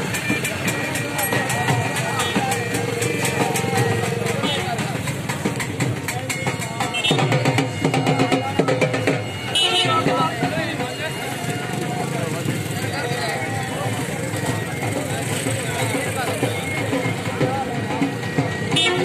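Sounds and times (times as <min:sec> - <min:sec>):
crowd calling and shouting: 0:00.0 - 0:19.0
rhythmic percussion: 0:00.0 - 0:19.0.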